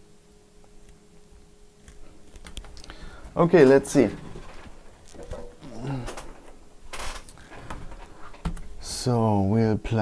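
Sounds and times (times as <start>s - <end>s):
faint mumbling: 5.6s - 6.4s.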